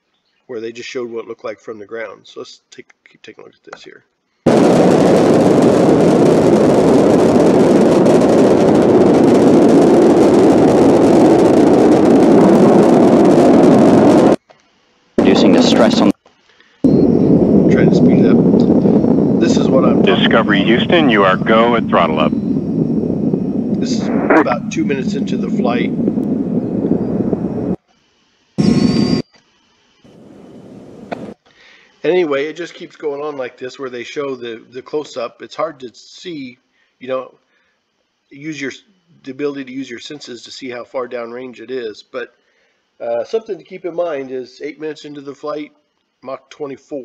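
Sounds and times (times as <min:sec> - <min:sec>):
rocket engines deep rushing roar: 0:04.5 - 0:14.4, 0:15.2 - 0:16.1, 0:17.0 - 0:27.8.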